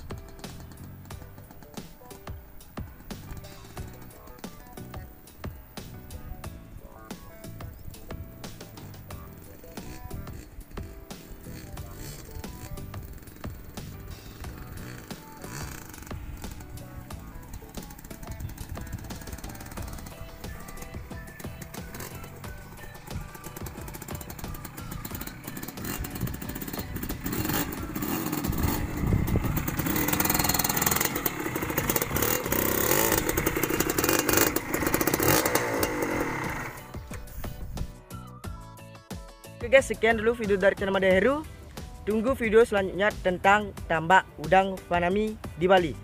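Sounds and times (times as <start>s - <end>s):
two-stroke motorcycle engine running: 0.0s - 37.8s
background music: 0.0s - 46.0s.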